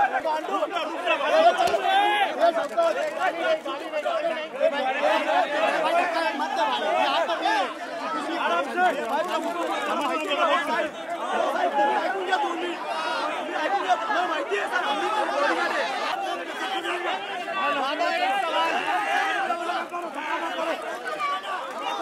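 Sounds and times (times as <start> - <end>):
crowd of men talking: 0.0 - 22.0.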